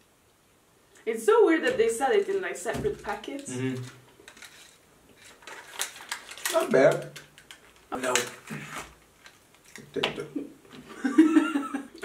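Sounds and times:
snack wrapper crinkling: 0:03.4 - 0:09.9.

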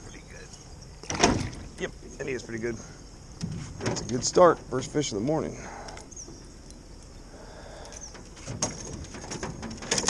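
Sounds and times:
faint bird chirp: 0:00.0 - 0:03.4, 0:05.5 - 0:08.3.

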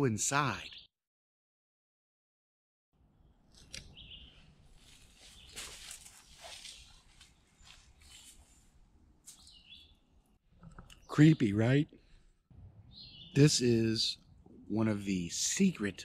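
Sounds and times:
bird chirps: 0:03.2 - 0:04.5, 0:05.2 - 0:08.4, 0:09.3 - 0:10.1, 0:12.8 - 0:14.4
rustling on forest floor: 0:03.6 - 0:09.7.

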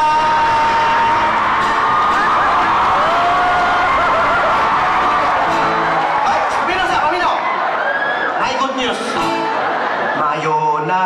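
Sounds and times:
acoustic guitar: 0:00.0 - 0:07.0, 0:08.9 - 0:10.2
audience cheering and whooping: 0:00.0 - 0:10.6.

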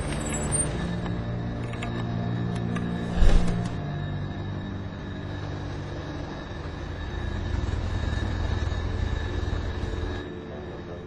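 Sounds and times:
jet airliner engines rushing: 0:00.0 - 0:11.0.

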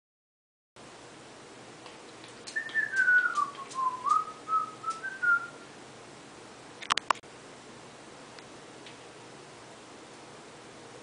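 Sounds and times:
person whistling: 0:02.5 - 0:05.6
sharp click: 0:06.8 - 0:07.2.

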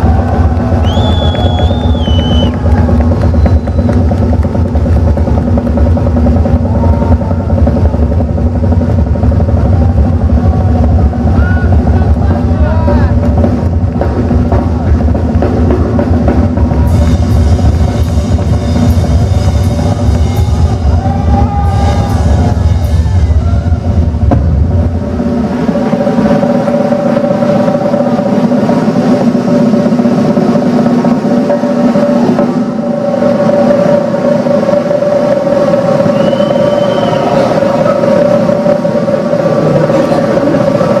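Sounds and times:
bass drum hits: 0:00.0 - 0:25.7
drum roll: 0:00.0 - 0:41.0.

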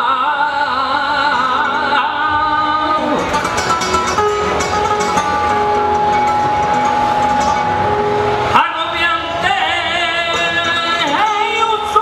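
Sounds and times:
dense noisy background: 0:00.0 - 0:12.0
steady held tone: 0:01.5 - 0:11.9.

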